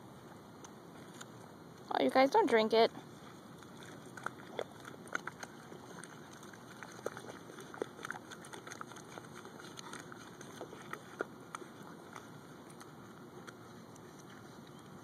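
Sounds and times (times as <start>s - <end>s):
wet mud squelches: 2.4s - 15.0s.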